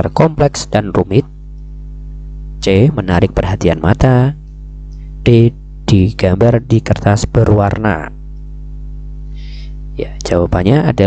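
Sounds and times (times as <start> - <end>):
person speaking: 0.0 - 1.4, 2.6 - 8.2, 9.4 - 11.0
low buzzy electrical hum: 0.0 - 11.0.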